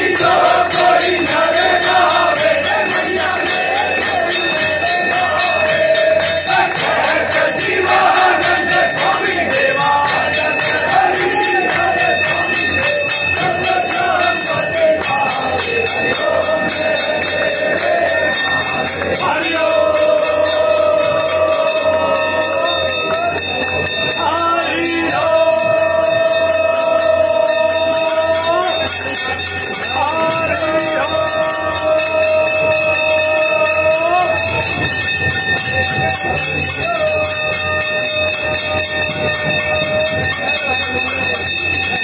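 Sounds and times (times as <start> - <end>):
bells and jingles struck: 0.0 - 42.0
long held tone: 0.0 - 42.0.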